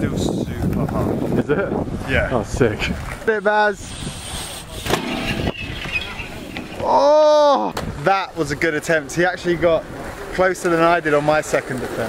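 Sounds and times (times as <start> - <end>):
bike tyres rolling on concrete: 4.2 - 7.8
pegs grinding on metal rail: 4.8 - 7.0.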